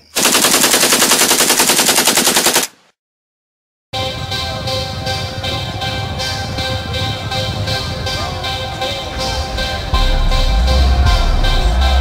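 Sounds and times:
rapid rattling bangs: 0:00.2 - 0:02.7
music: 0:04.0 - 0:12.0.

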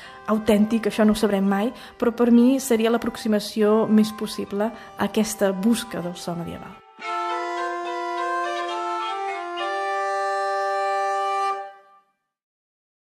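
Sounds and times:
organ playing sustained notes: 0:00.0 - 0:12.0.

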